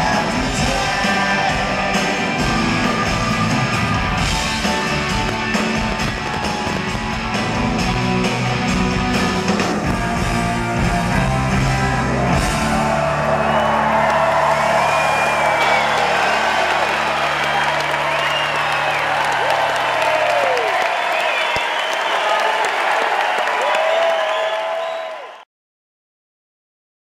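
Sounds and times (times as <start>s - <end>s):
crowd cheering and applauding: 0.0s - 25.5s.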